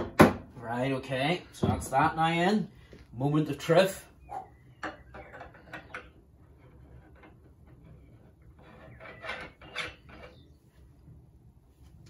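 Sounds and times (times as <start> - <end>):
wooden stick sections rubbing and knocking: 5.0 - 11.2.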